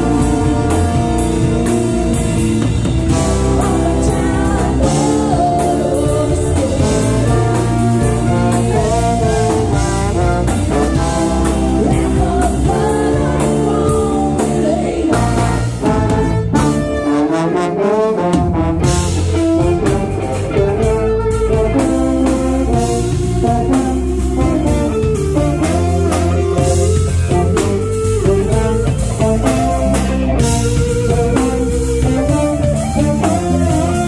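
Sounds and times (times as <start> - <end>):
gliding trombone line: 0.0 - 34.0
live brass band playing: 0.0 - 34.0.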